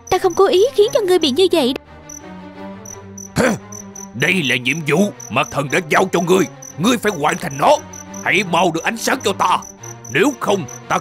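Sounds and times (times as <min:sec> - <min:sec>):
crickets chirping: 0:00.0 - 0:01.1, 0:02.1 - 0:11.0
person humming hmm: 0:03.4 - 0:03.6.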